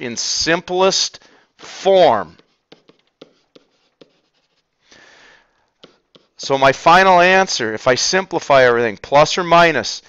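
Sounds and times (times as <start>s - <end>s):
stylus tapping and stroking: 2.0s - 4.8s, 5.6s - 6.6s.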